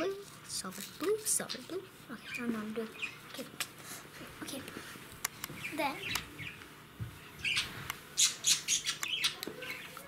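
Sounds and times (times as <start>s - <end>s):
bird squawking: 7.4s - 10.0s.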